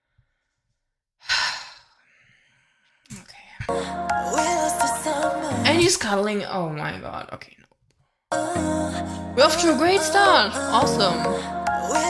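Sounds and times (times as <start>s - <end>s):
woman sighing: 1.2s - 2.0s.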